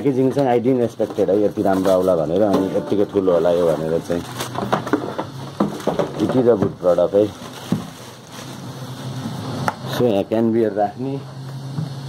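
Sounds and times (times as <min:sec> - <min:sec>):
plastic bag rustling: 0:06.2 - 0:09.0.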